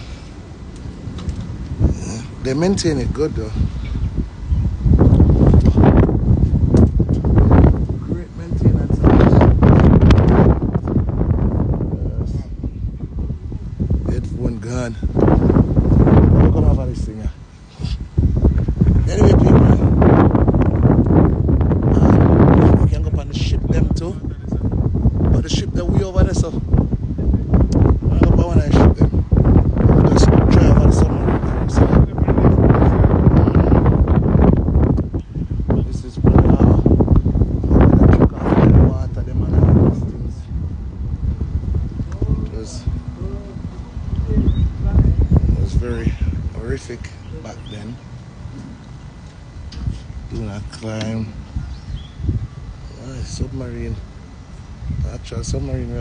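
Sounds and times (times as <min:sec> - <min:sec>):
wind buffeting a microphone: 0:00.0 - 0:56.0.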